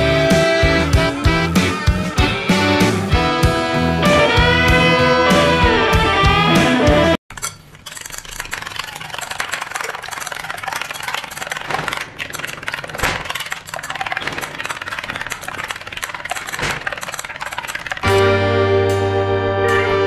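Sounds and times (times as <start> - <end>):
spoon clinking against glass bowl: 7.3 - 8.6.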